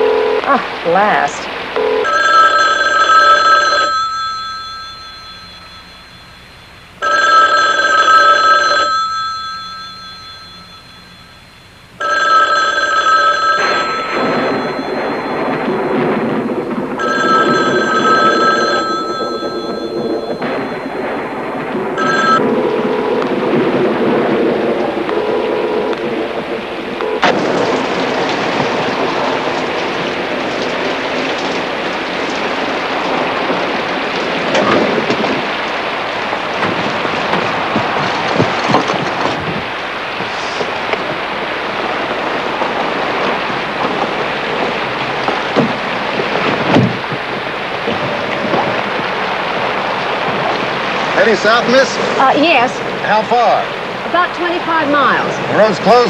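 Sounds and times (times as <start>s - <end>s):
steady rain: 0.0s - 56.0s
telephone bell ringing: 1.8s - 21.2s, 22.0s - 23.1s.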